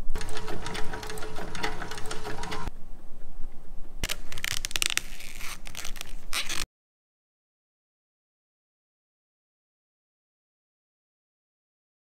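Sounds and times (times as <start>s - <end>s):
sewing machine clattering: 0.0s - 2.7s.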